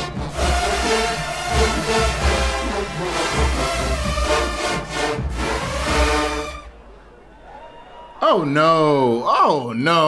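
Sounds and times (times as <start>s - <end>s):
marching band brass playing: 0.0s - 6.8s.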